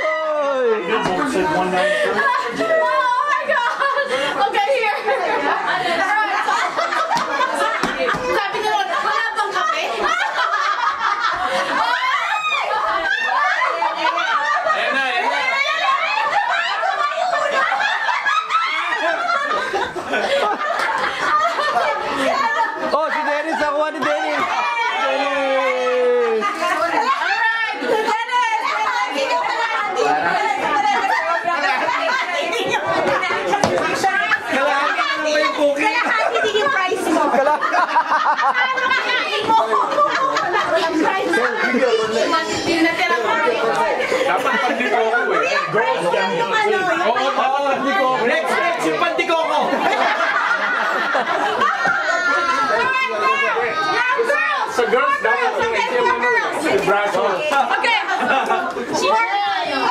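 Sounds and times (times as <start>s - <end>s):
group of people laughing: 0.0s - 59.9s
people talking: 0.0s - 59.9s.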